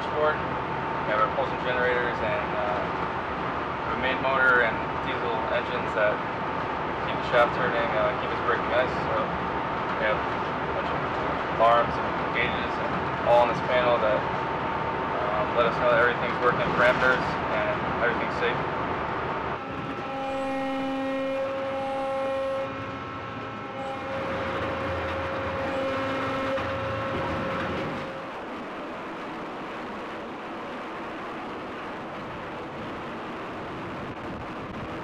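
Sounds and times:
engine room machinery hum: 0.0 - 35.0
high steady machinery whine: 0.0 - 35.0.

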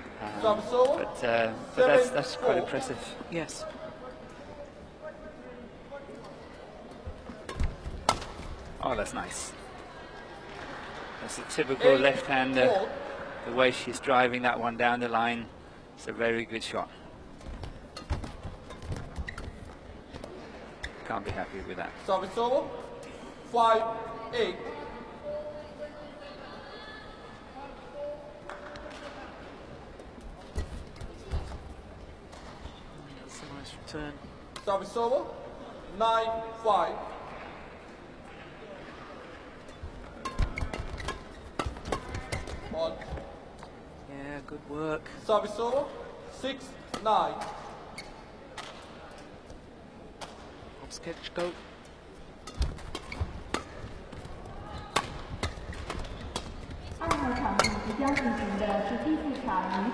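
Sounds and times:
murmur of arena crowd: 0.0 - 59.9
crowd murmur: 9.4 - 13.8
racket hitting shuttlecock: 52.4 - 54.2, 54.9 - 58.0.

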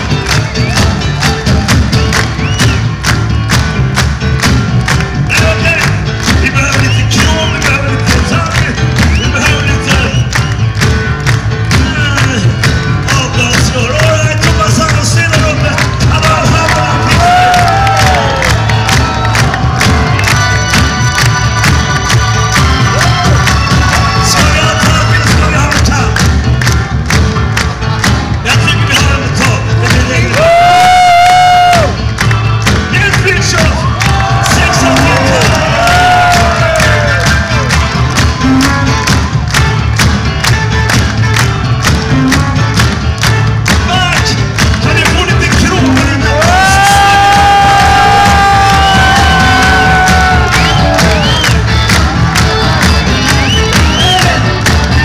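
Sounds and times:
live rock band playing: 0.0 - 55.0.

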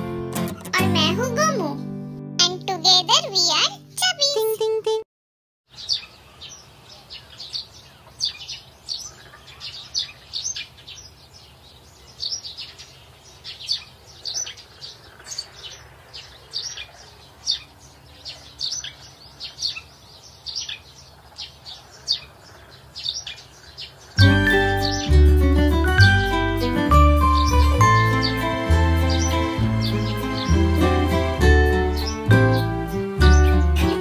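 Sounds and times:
small birds chirping: 5.7 - 34.0.

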